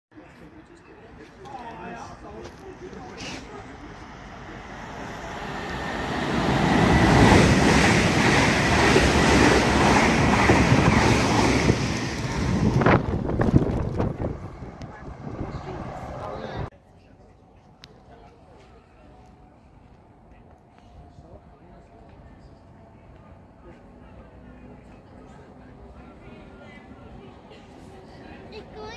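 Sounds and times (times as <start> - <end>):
electric train passing: 2.2 - 16.7.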